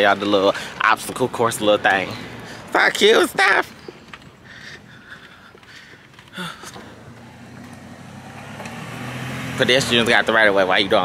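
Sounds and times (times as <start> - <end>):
car engine humming: 3.8 - 11.0.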